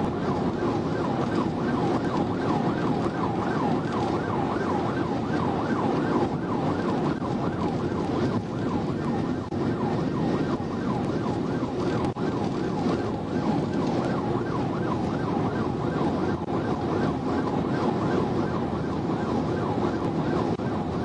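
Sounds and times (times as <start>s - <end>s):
police siren yelping: 0.0s - 21.0s
road and engine noise: 0.0s - 21.0s.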